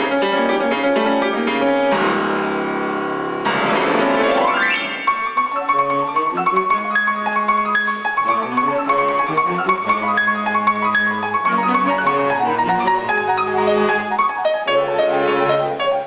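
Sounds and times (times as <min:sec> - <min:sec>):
live instrumental ensemble music: 0:00.0 - 0:16.0.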